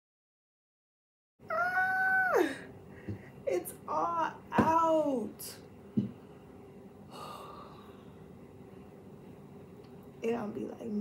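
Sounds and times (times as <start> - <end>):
woman sighing: 7.1 - 8.0.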